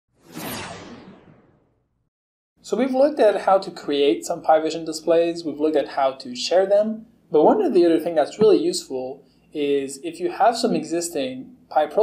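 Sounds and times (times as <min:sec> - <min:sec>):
whoosh sound effect: 0:00.2 - 0:01.8.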